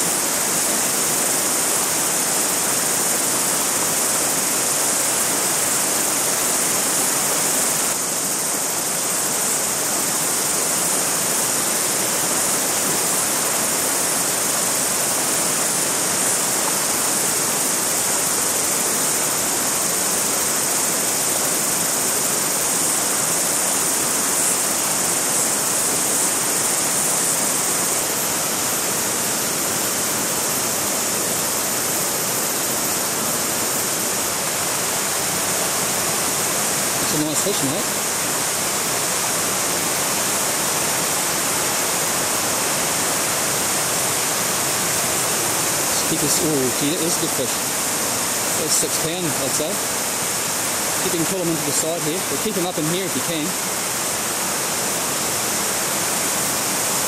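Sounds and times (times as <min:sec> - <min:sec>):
river water rushing over stones: 0:00.0 - 0:57.0.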